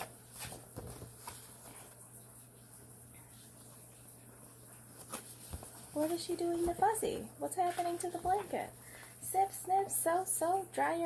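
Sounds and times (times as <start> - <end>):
book pages rustling: 0.0 - 2.6, 4.8 - 9.2
low steady hum: 0.0 - 11.0.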